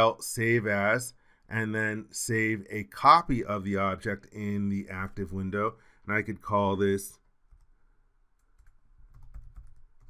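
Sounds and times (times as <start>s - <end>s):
computer keyboard clicks: 8.5s - 9.8s.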